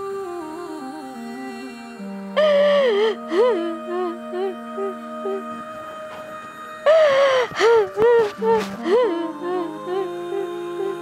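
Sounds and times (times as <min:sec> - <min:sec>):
soft background music: 0:00.0 - 0:11.0
breathy gasping cry: 0:06.9 - 0:10.1.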